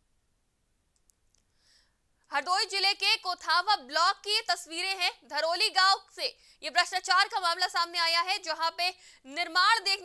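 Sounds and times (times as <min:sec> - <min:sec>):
faint hiss: 0:00.0 - 0:02.3
faint clicks: 0:00.9 - 0:01.6.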